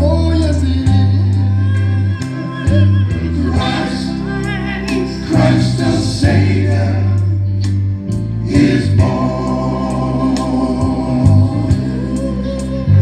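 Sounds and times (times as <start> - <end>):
men singing in harmony: 0.0 - 7.6, 8.3 - 13.0
deep bass notes: 0.0 - 13.0.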